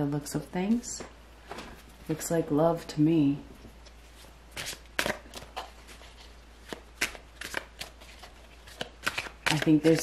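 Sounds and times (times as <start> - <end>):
cards snapping: 4.6 - 5.7, 6.6 - 10.0.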